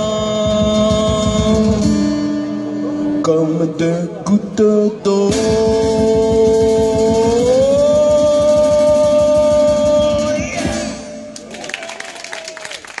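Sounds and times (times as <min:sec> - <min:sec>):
man singing: 0:00.0 - 0:11.4
light applause: 0:11.3 - 0:13.0.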